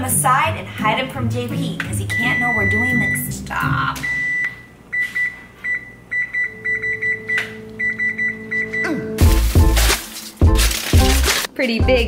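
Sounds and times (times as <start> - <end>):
music with heavy bass beat: 9.2 - 12.0.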